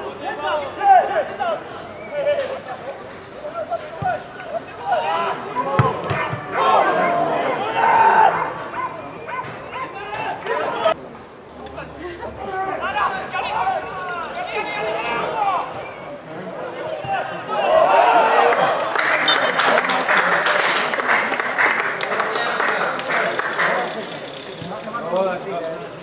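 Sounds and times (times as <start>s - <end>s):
men shouting and calling: 0.0s - 11.0s, 11.8s - 18.9s.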